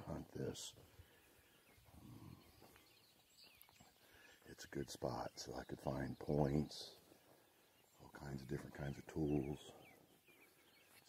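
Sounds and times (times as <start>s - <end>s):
faint outdoor ambience: 0.0s - 11.0s
small bird chirp: 0.1s - 11.0s.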